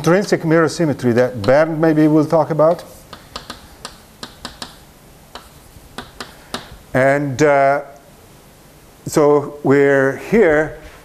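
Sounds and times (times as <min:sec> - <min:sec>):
chalk tapping on blackboard: 0:01.4 - 0:01.9, 0:02.6 - 0:06.8.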